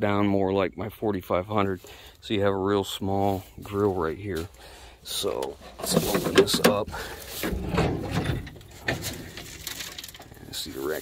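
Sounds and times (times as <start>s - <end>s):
bus hood scraping open: 5.6s - 10.4s.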